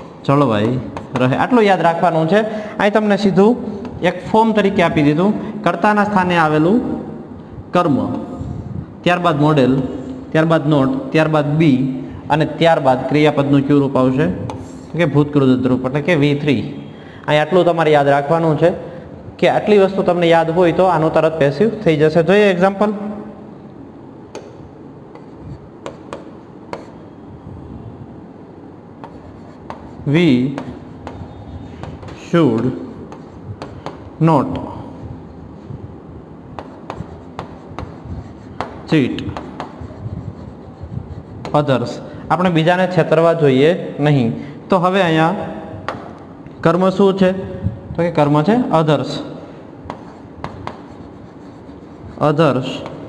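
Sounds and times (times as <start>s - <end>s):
pen tip tapping: 24.3s - 26.9s
pen writing on screen: 25.1s - 27.2s, 29.0s - 32.2s, 32.8s - 34.0s, 36.6s - 41.7s, 49.9s - 53.0s.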